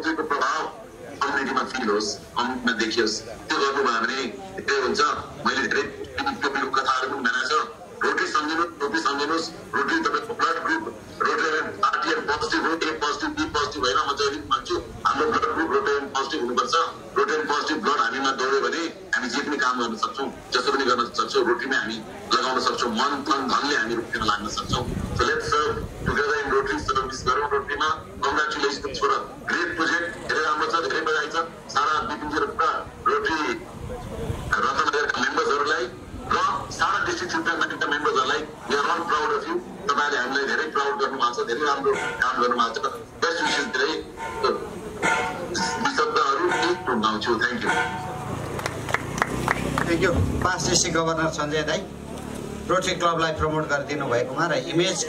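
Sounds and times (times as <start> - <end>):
man speaking over public address: 0.0 - 48.5, 49.6 - 55.0.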